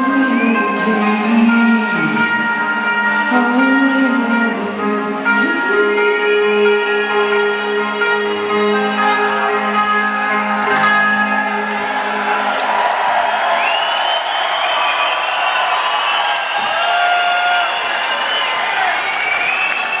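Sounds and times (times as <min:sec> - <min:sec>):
high held tones bending in pitch: 0:00.0 - 0:12.2
electric guitar chord ringing: 0:00.5 - 0:12.6
crowd cheering and applauding: 0:07.1 - 0:20.0.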